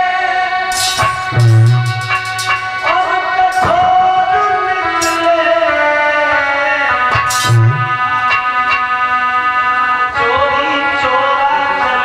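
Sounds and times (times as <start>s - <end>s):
organ-like keyboard chords: 0.0s - 12.0s.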